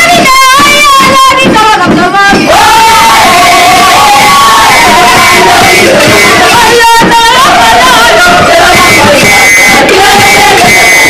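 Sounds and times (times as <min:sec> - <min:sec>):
choir singing in unison: 0:00.0 - 0:01.5, 0:02.2 - 0:11.0.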